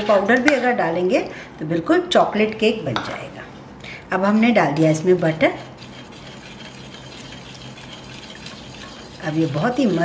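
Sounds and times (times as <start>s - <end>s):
liquid sloshing from whisking: 4.8s - 10.0s.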